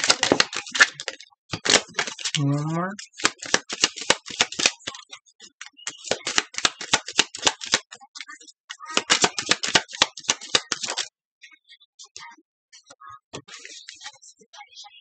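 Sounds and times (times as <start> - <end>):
cards being shuffled: 0.0 - 5.0, 5.8 - 8.0, 8.9 - 11.1.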